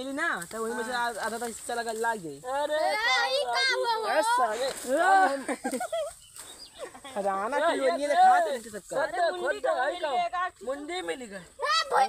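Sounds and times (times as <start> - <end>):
boys talking and calling out: 0.0 - 12.0.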